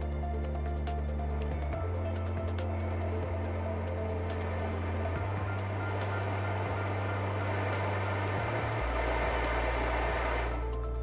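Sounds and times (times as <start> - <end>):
low bass note music: 1.0 - 11.0
ventilator blower hissing: 1.7 - 10.8.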